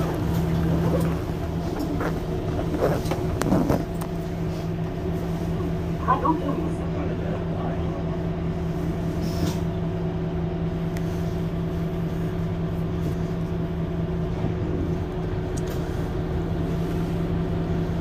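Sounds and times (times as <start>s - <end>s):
city bus idling hum: 0.0s - 18.0s.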